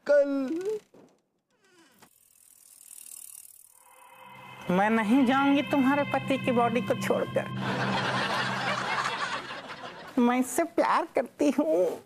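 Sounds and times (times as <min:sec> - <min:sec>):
bicycle freewheel ratchet clicking: 0:01.6 - 0:04.1.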